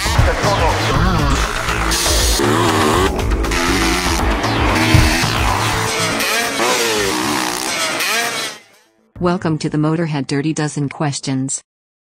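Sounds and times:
background music: 0:00.0 - 0:11.0
motorbike engines revving: 0:00.6 - 0:08.6.

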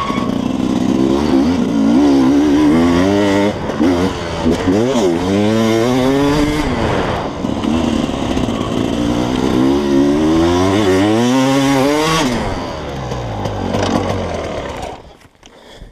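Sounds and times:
motorcycle engine accelerating: 0:00.0 - 0:15.2.

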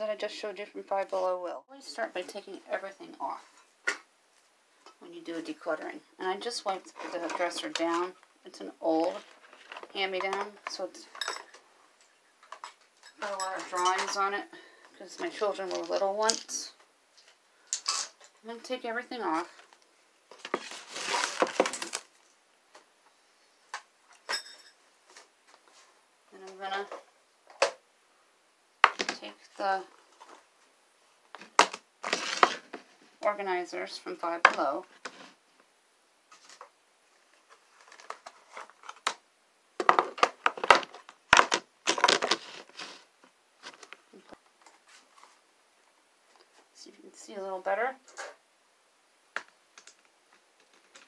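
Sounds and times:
plastic bins knocking and clattering: 0:20.4 - 0:22.1, 0:39.8 - 0:42.5.

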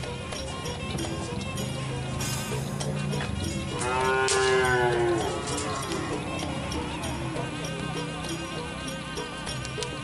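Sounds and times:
faint background music: 0:00.0 - 0:10.0
cattle mooing: 0:03.7 - 0:06.5.

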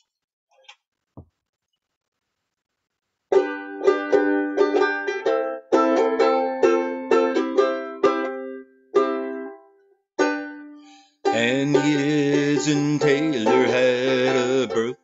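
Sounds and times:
banjo ukulele strumming chords: 0:03.3 - 0:15.0.

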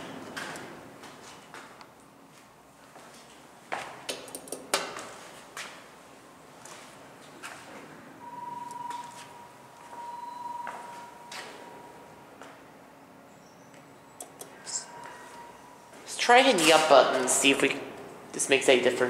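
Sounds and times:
high-pitched whine: 0:13.3 - 0:16.6.

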